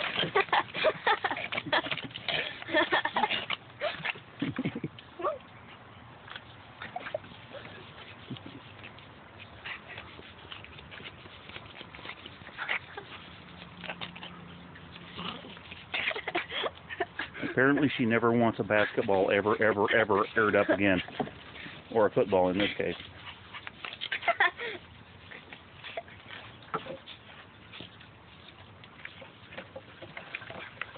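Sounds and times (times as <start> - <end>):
small dog growling and snapping: 15.0 - 15.7.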